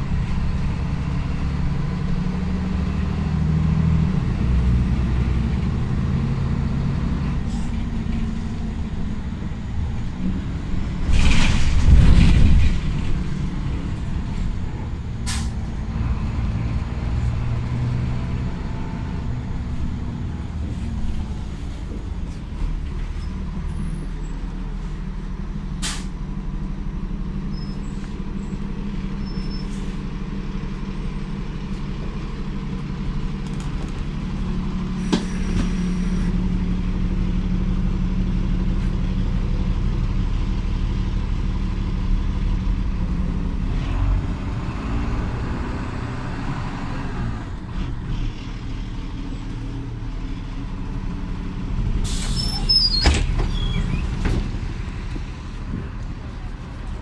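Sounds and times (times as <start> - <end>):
bus diesel engine droning: 0.0 - 57.0.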